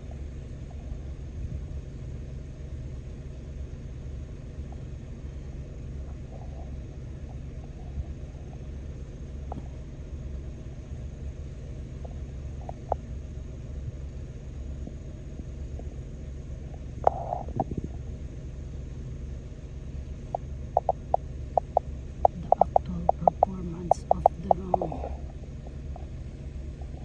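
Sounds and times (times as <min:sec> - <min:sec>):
drone hovering low rumble: 0:00.0 - 0:27.0.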